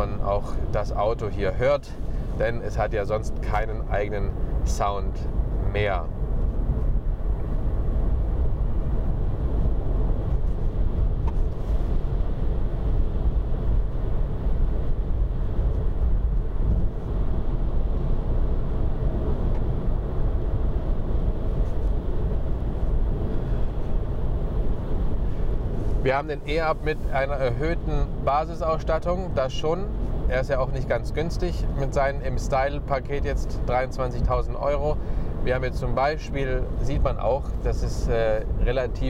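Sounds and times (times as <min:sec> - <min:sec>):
road rumble and tyre roar: 0:00.0 - 0:39.0
wind noise in car cabin: 0:00.0 - 0:39.0.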